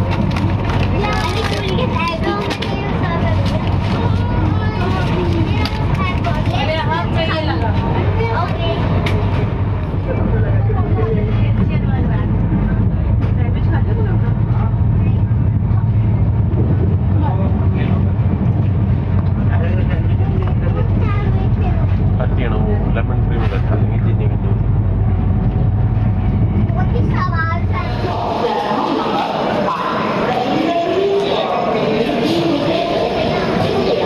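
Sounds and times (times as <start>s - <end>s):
train rumble: 0.0s - 34.0s
voices: 0.0s - 34.0s.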